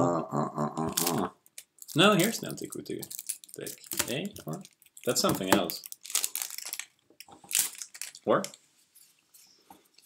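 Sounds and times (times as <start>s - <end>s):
person speaking: 0.0s - 5.9s.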